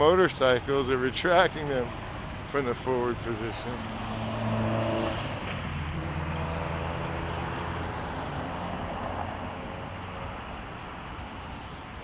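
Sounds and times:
car passing close: 3.6 - 10.1.

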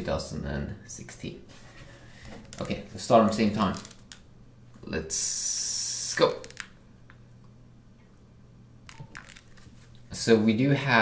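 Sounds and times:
low steady hum: 0.0 - 11.0
hands handling phones: 8.9 - 10.0.

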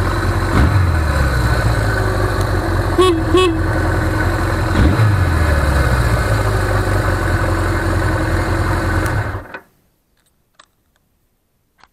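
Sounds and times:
motorcycle engine idling: 0.0 - 9.5.

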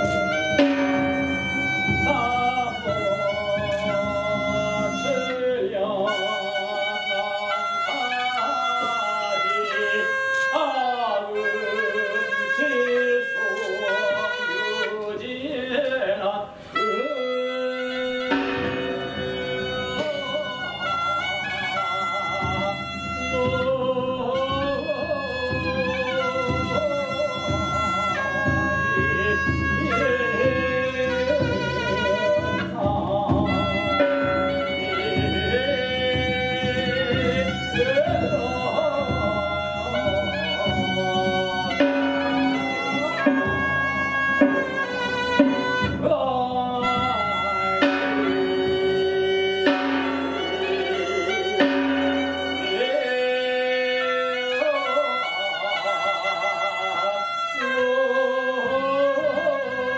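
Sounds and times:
low accompaniment: 0.0 - 59.9
ritual music with wavering melody: 0.0 - 59.9.

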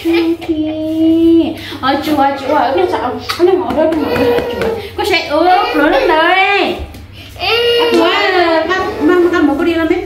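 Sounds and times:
toddler crying: 3.8 - 6.7, 7.4 - 9.4.

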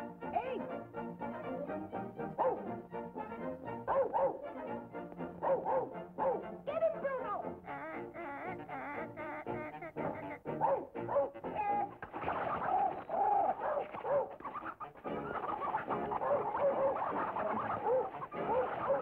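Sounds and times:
orchestral music: 0.0 - 12.0
cartoon bird squawks and coos: 6.2 - 19.0.

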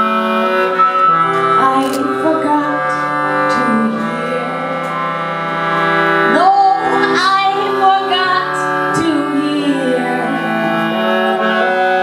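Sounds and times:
piano accordion chords: 0.0 - 12.0
woman singing: 1.6 - 5.0, 6.3 - 11.4.

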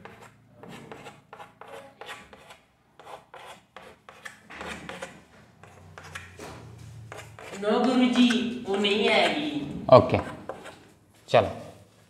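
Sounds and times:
chalk scratching on a board: 0.0 - 6.3, 7.1 - 10.9.

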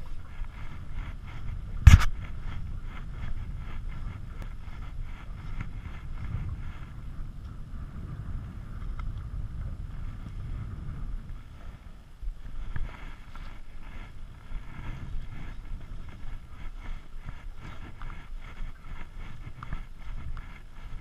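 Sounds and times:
choppy water: 0.0 - 21.0
wind buffeting microphone: 0.0 - 21.0
faint clicks: 8.8 - 9.3.

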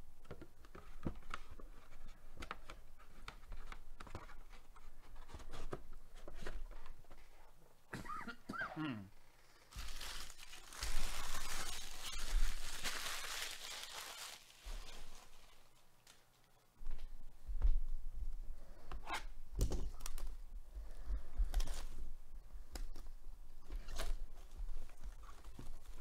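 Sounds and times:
plastic wrapping crinkling: 9.6 - 16.7.

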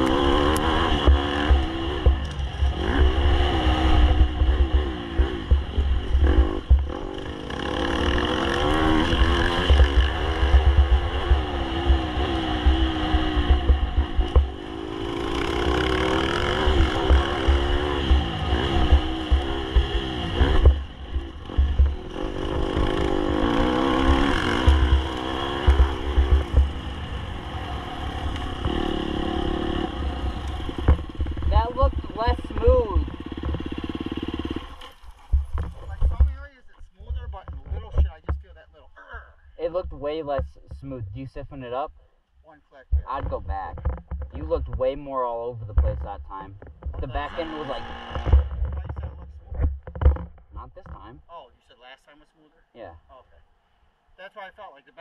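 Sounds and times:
dirt bike engine revving: 0.0 - 36.3, 42.9 - 51.1.

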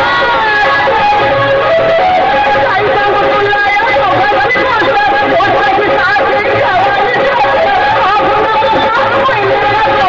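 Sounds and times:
dance song with singing: 0.0 - 10.0.

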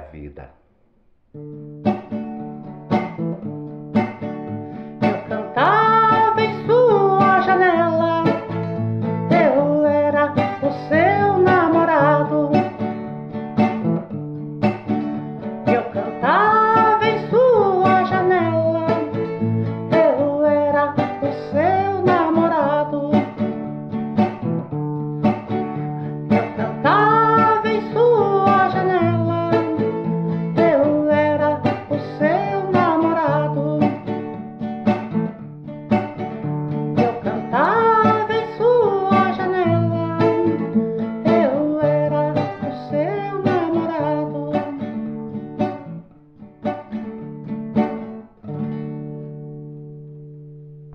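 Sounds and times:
plucked guitar music: 1.1 - 50.9.

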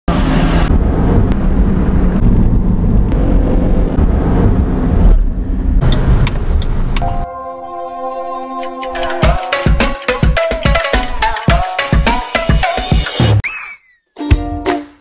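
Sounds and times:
car road noise rumble: 0.1 - 7.1
music with held chords: 7.0 - 13.4, 14.2 - 15.0.

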